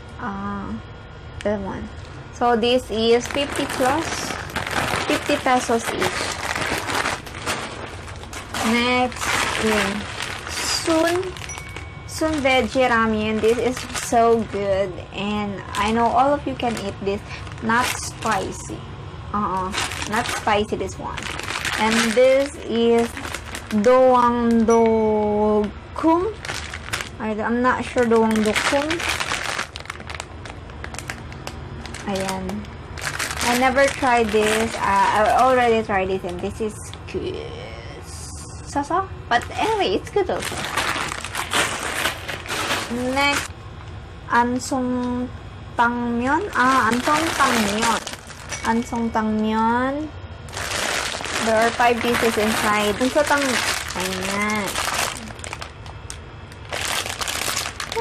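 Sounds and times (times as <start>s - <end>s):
plastic packet crackling: 2.8s - 18.7s, 19.4s - 24.7s, 25.6s - 37.0s, 39.3s - 43.5s, 46.4s - 49.3s, 50.5s - 58.0s
faint background music: 44.3s - 55.6s.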